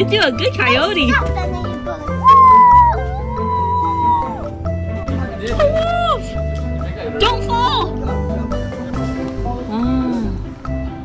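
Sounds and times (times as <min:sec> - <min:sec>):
background music: 0:00.0 - 0:11.0
child howling like a coyote: 0:02.2 - 0:04.4.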